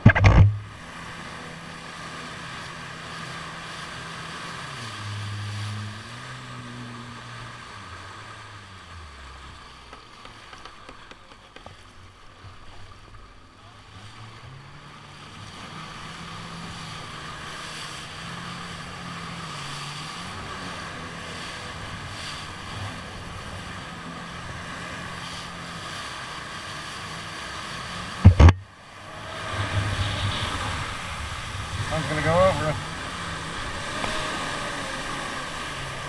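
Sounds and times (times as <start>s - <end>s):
loud sharp thump: 0.0s - 0.6s, 28.2s - 28.6s
jet ski engine: 0.0s - 36.0s
water rushing: 0.0s - 36.0s
wind on microphone: 28.2s - 35.0s.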